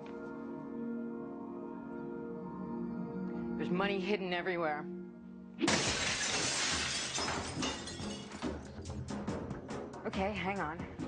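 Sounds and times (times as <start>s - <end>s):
hammer smashing into wall: 5.6s - 8.6s.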